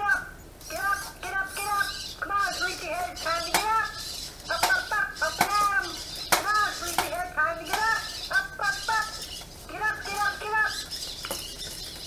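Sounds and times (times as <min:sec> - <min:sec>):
robot electronic chirping voice: 0:00.0 - 0:11.1.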